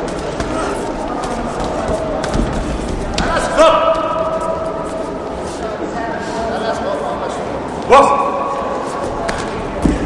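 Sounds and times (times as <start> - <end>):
murmur of voices in a hall: 0.0 - 10.0
man shouting: 3.4 - 4.1, 7.9 - 8.3.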